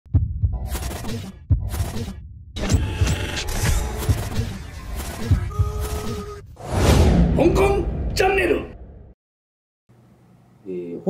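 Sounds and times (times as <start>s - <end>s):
glitch effects: 2.6s - 6.4s.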